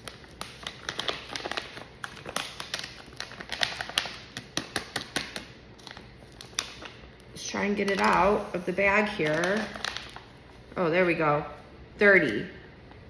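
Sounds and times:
plastic pouch crinkling: 0.0 - 10.8.

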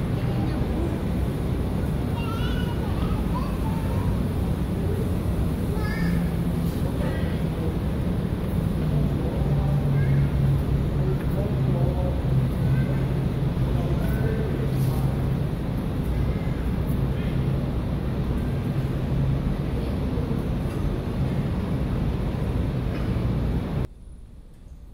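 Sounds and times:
faint distant voices: 0.0 - 23.7
traffic rumble: 0.0 - 24.9.

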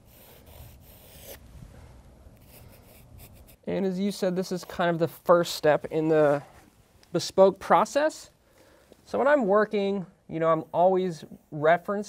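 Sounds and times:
pen scratching on paper: 0.0 - 1.4, 2.4 - 3.6.

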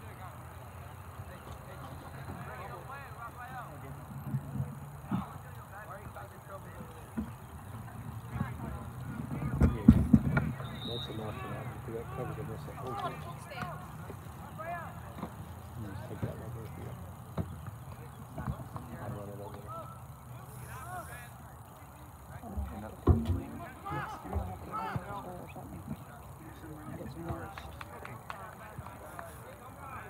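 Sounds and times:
distant shouts and calls: 0.0 - 30.0.

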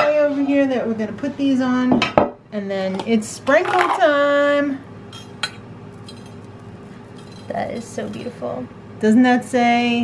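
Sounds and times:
kitchenware clicks and clinks: 5.1 - 6.5, 7.2 - 8.4.

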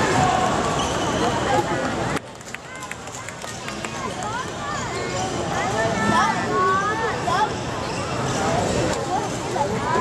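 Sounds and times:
sneaker squeaks: 0.7 - 1.7, 7.5 - 9.4.

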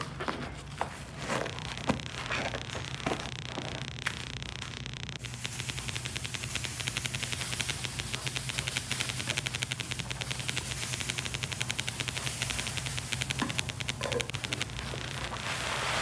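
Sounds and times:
rapid even ticking: 1.9 - 15.5.

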